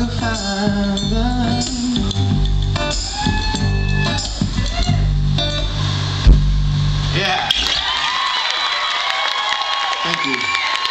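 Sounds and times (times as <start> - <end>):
audience cheering and whooping: 2.8 - 5.2, 7.4 - 10.9.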